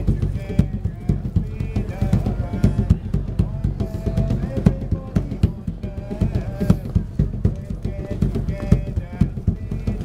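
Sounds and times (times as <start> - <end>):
hand drum thumps and slaps: 0.0 - 10.0
man singing: 0.0 - 10.0.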